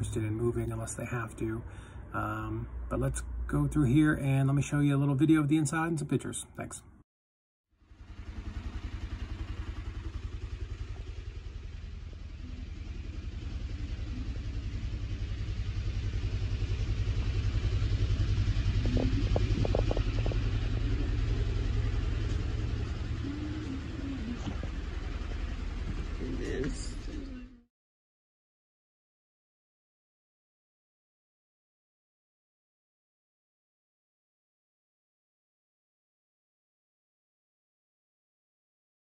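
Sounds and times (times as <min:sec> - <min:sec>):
low pulsing mechanical hum: 0:08.0 - 0:27.7
faint voices: 0:18.8 - 0:22.2, 0:22.9 - 0:25.0.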